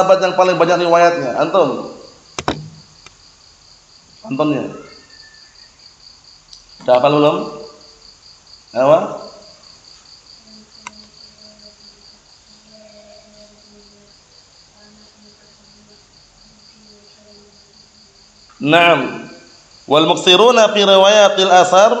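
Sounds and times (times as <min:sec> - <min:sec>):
cricket chirping: 0:00.0 - 0:22.0.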